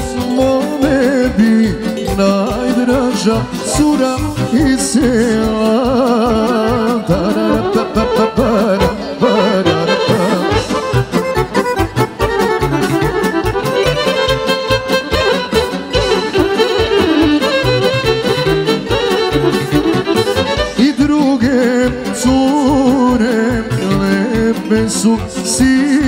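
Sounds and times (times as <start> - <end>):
live folk dance band: 0.0 - 26.0
ornamented melodic lead: 0.0 - 26.0
steady drum beat: 0.0 - 26.0.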